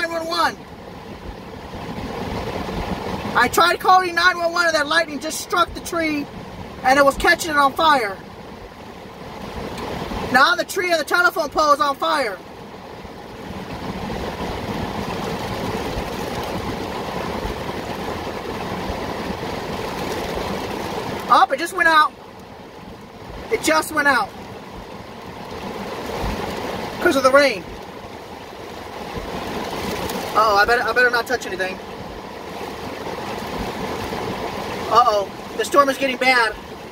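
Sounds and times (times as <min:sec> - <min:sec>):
heavy rain on car roof: 0:14.2 - 0:22.1, 0:28.6 - 0:36.8.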